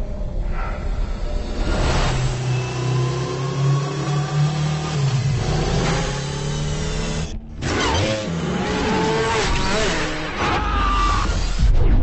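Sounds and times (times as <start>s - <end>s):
synthetic engine hum with whining: 0.0s - 12.0s.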